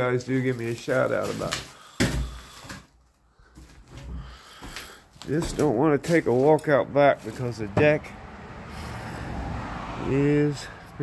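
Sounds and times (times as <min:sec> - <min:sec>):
vehicle on a road: 0:06.4 - 0:11.0.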